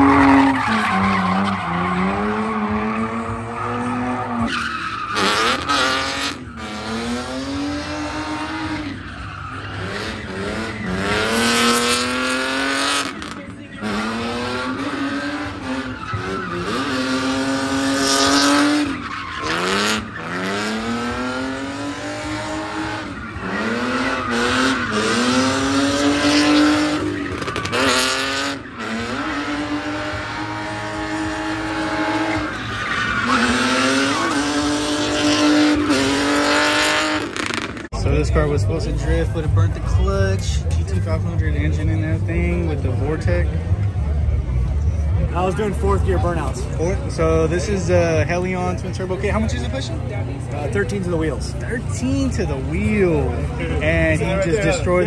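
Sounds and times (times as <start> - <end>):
car engine revving: 0.0 - 55.0
tyres squealing: 12.6 - 21.0.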